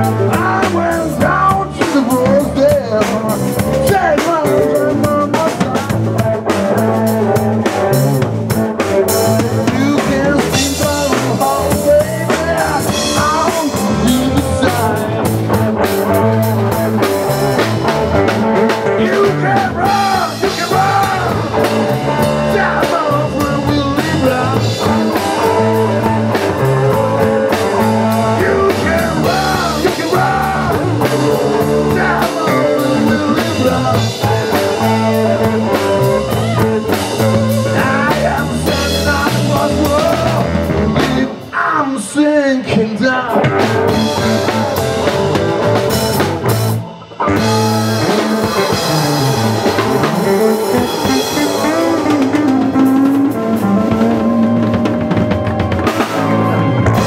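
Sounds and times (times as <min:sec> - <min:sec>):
electric guitar with string bends: 0:00.0 - 0:41.6, 0:43.3 - 0:57.0
drum kit: 0:00.0 - 0:42.2, 0:43.2 - 0:57.0
bass guitar: 0:00.0 - 0:57.0.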